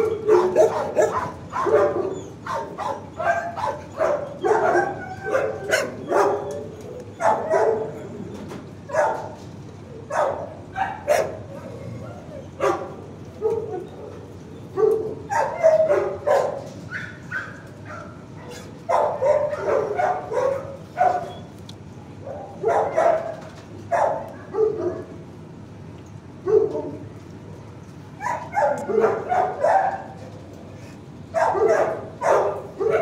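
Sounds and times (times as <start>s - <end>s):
dog barking: 0.0s - 6.6s, 7.2s - 8.0s, 8.9s - 9.4s, 10.1s - 13.8s, 14.8s - 21.4s, 22.2s - 25.1s, 26.4s - 27.0s, 28.2s - 30.2s, 31.3s - 33.0s.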